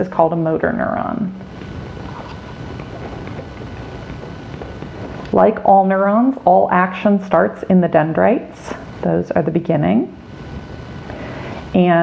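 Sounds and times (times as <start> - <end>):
wind rumble on microphone: 0.6 - 11.0.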